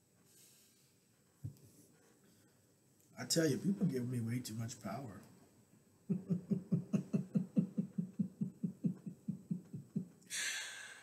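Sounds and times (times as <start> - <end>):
man chuckling: 6.1 - 10.2.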